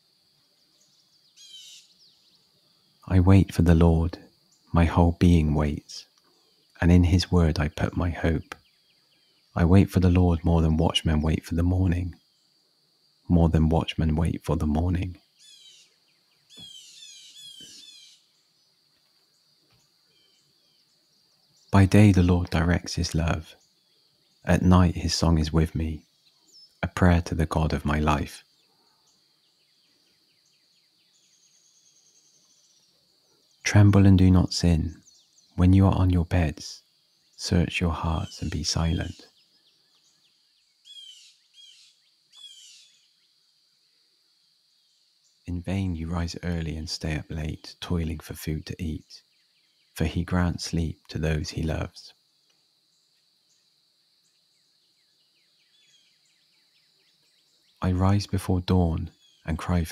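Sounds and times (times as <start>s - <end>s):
songbird singing: 0.0s - 59.9s
bird song whistled notes: 0.6s - 3.0s, 15.2s - 21.8s, 26.0s - 26.8s, 28.5s - 33.7s, 34.4s - 35.6s, 38.2s - 43.4s, 54.2s - 57.8s, 58.9s - 59.5s.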